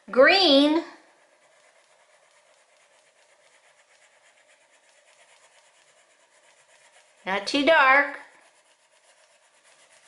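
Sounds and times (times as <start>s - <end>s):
crayon rubbing on paper: 0.0s - 10.0s.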